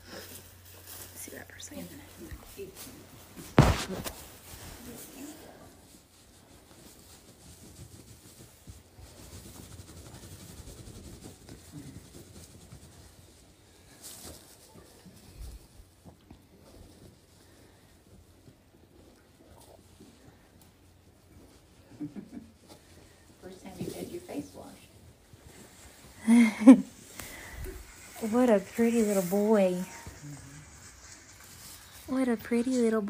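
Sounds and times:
rustling of straw and cloth: 0.0s - 33.0s
sharp knock: 3.6s - 4.1s.

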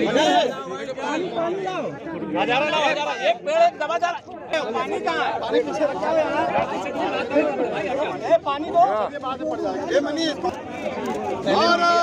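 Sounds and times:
men talking at once: 0.0s - 12.0s.

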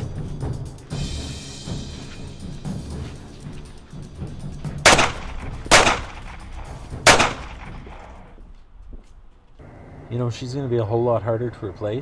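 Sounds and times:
gunshots with echo: 4.8s - 8.1s.

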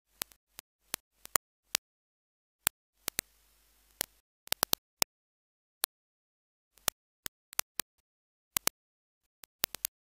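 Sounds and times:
sharp clicks: 3.9s - 5.1s, 6.7s - 8.8s, 9.4s - 10.0s.

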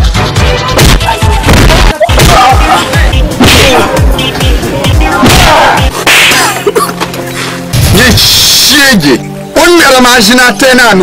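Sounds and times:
background music with held tones: 0.0s - 11.0s
swish and smack hit: 0.8s - 2.4s, 5.2s - 5.7s.

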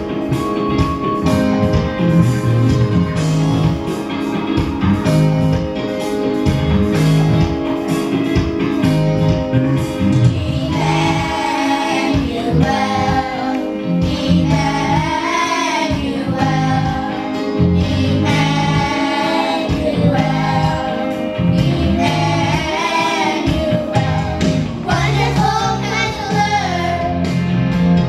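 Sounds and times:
instrumental accompaniment low notes: 0.0s - 28.0s
children's choir singing: 10.3s - 27.3s.

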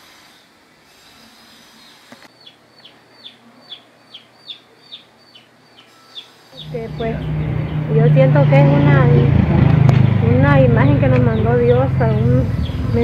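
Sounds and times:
bird calling high falling notes: 5.8s - 13.0s.

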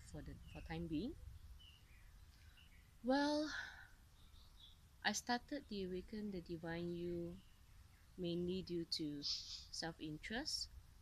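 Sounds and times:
bird chirps: 0.0s - 9.9s
low background noise: 0.0s - 11.0s.

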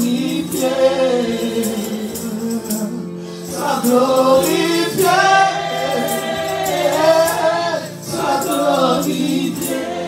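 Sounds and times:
keyboard accompaniment: 0.0s - 10.0s
women singing gospel song: 0.0s - 10.0s.

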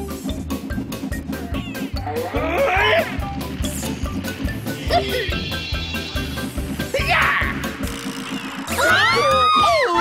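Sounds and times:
cartoon music with steady beat: 0.0s - 10.0s
gliding rising and falling tones: 3.1s - 10.0s.

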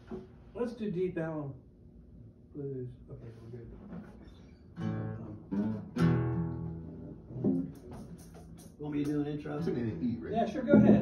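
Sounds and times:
guitar struck and ringing: 4.8s - 8.8s, 10.6s - 11.0s.

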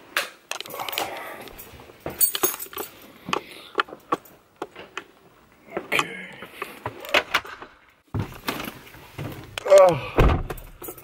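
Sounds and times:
keys jingling: 0.7s - 3.1s.

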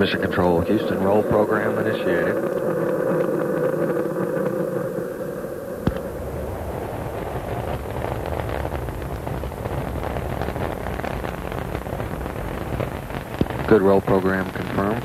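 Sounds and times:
rocket engines rumbling and crackling: 0.0s - 15.0s.

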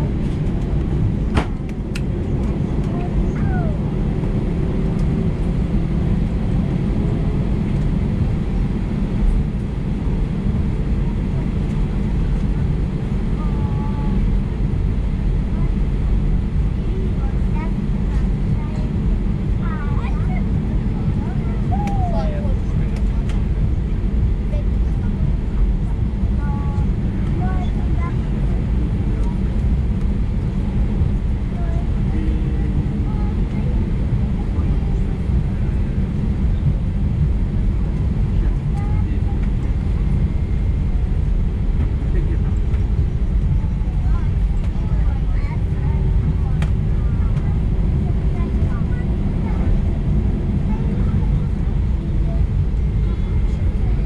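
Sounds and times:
jet engines idling: 0.0s - 54.0s.

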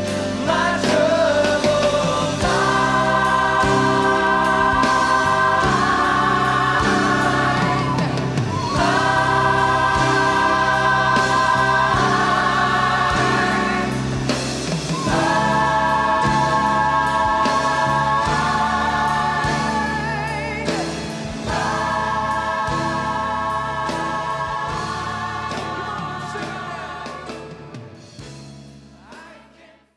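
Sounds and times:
gospel choir singing held chords: 0.0s - 29.9s.

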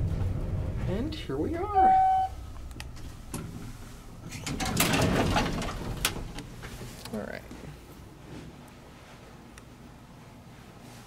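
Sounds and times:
elevator doors rattling slide: 0.0s - 7.0s
elevator door clunk: 1.6s - 6.8s
elevator door click: 4.2s - 6.6s.

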